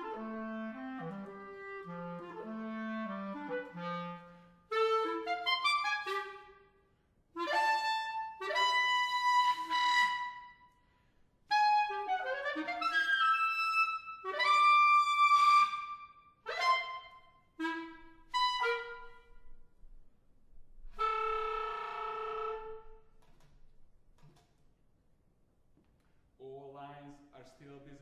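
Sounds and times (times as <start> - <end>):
solo clarinet playing: 0.0 - 10.8, 11.4 - 19.9, 20.8 - 23.2.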